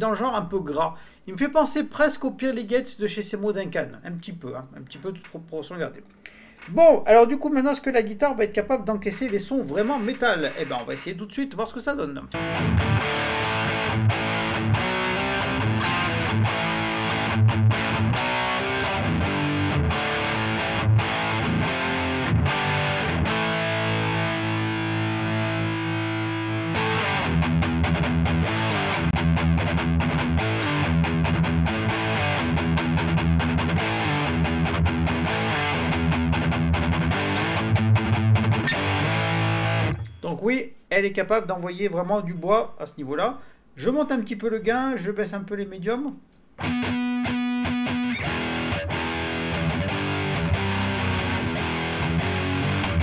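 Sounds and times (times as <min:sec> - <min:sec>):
distorted electric guitar riffs: 0:12.3 - 0:40.2, 0:46.6 - 0:53.0.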